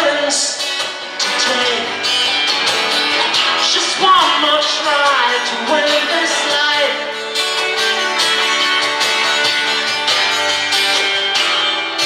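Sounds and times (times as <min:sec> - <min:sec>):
acoustic guitars strumming: 0:00.0 - 0:12.0.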